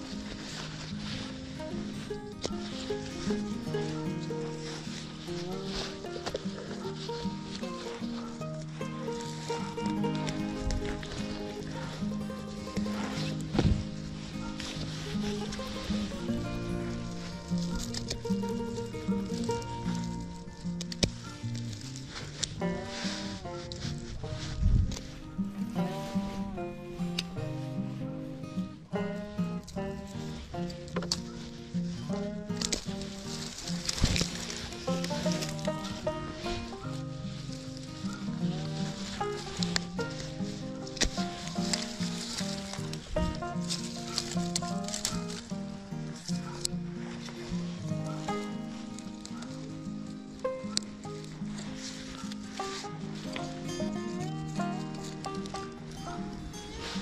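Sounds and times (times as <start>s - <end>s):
dry grass crackling and rustling: 0.0s - 57.0s
instrumental music with held notes: 0.0s - 57.0s.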